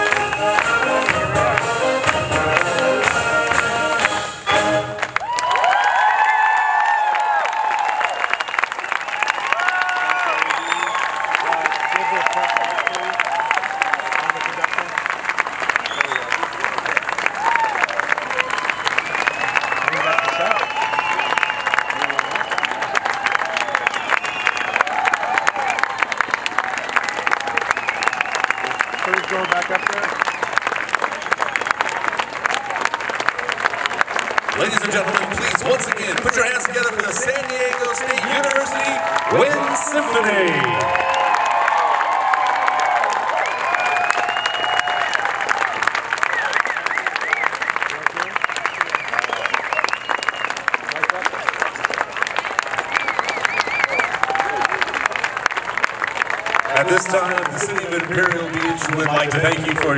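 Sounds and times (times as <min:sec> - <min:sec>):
audience applause: 0:00.0 - 0:59.9
audience cheering: 0:00.0 - 0:59.9.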